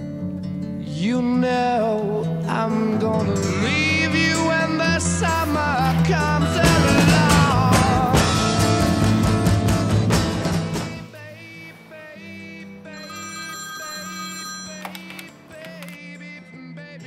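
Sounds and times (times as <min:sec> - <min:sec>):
rock song with drums: 0:06.0 - 0:11.0
telephone ringing: 0:12.2 - 0:16.4.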